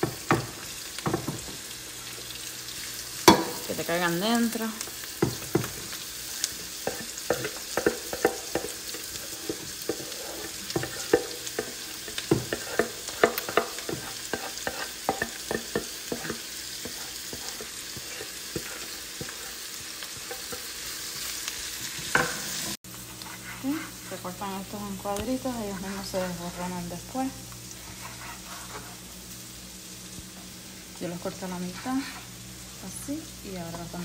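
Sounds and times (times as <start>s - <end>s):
vegetables sizzling in a frying pan: 0.0s - 34.0s.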